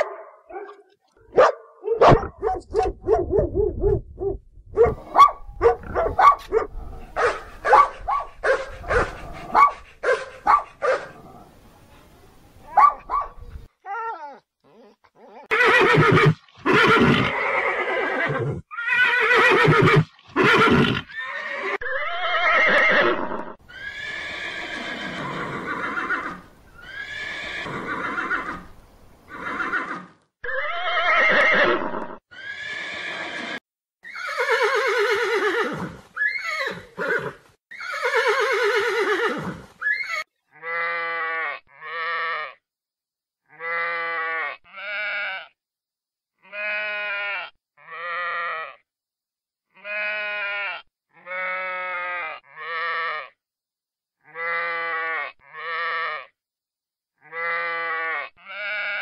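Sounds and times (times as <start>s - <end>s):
horse whinnying: 15.4s - 28.7s, 29.3s - 41.6s
sheep bleating: 43.5s - 45.6s, 46.4s - 48.8s, 49.8s - 53.4s, 54.2s - 56.4s, 57.2s - 59.0s.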